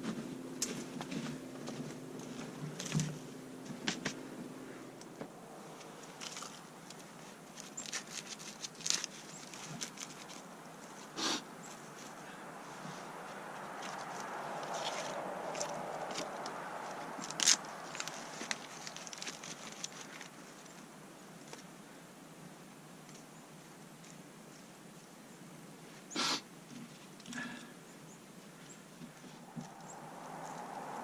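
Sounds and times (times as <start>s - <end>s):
rustling of bark and shavings: 4.8s - 21.8s.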